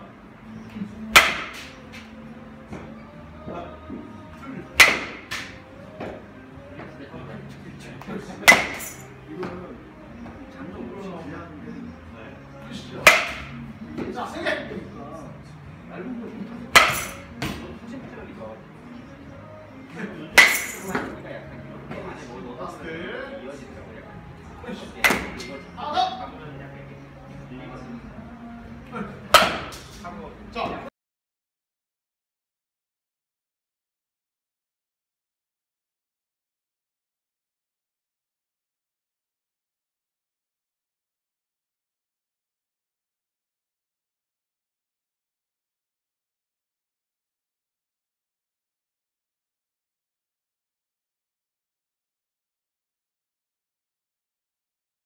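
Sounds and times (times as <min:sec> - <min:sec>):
bat hitting ball: 0:01.1 - 0:02.0, 0:04.8 - 0:06.2, 0:08.5 - 0:09.0, 0:13.0 - 0:13.6, 0:16.7 - 0:17.6, 0:20.4 - 0:21.1, 0:25.0 - 0:25.5, 0:29.3 - 0:29.9.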